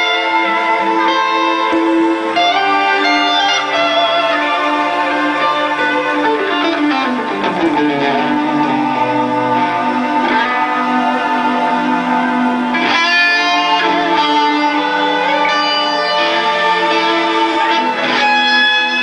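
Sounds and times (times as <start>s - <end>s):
electric guitar melody: 0.0s - 19.0s
string orchestra: 0.0s - 19.0s.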